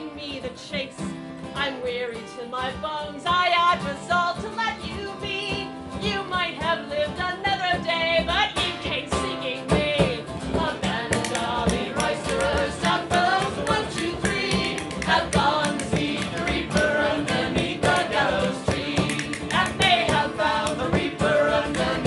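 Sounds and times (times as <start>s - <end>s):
woman singing a ballad: 0.0s - 12.0s
instrumental accompaniment: 0.1s - 22.0s.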